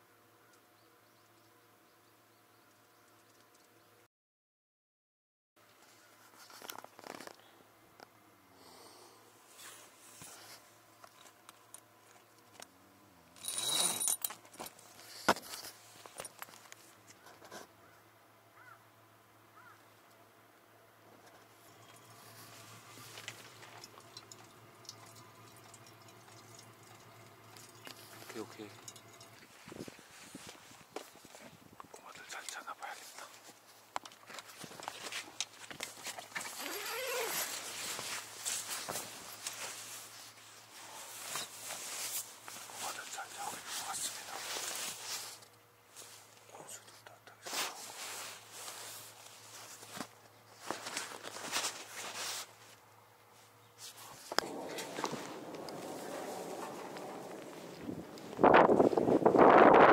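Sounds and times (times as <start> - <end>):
rustling and scraping: 5.6 - 7.5, 9.5 - 12.7, 13.4 - 17.8, 21.1 - 31.7, 33.0 - 59.9.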